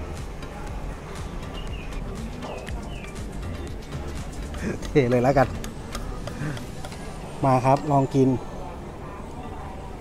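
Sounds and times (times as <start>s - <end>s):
man speaking: 4.6s - 5.6s, 7.4s - 8.4s.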